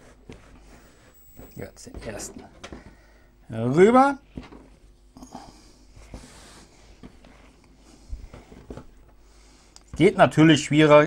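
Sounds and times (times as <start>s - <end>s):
hands rubbing dough: 5.9s - 10.1s.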